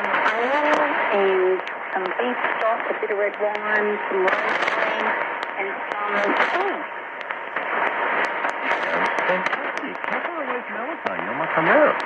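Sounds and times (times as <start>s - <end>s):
radio static hiss: 0.0s - 12.0s
static crackles: 0.0s - 12.0s.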